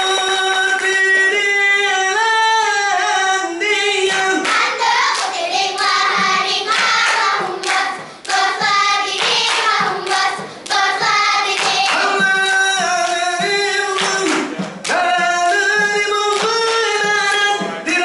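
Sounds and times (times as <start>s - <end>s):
rhythmic hand clapping and slapping: 0.0s - 1.6s, 4.0s - 18.0s
girls singing chant-like melody: 4.3s - 13.1s.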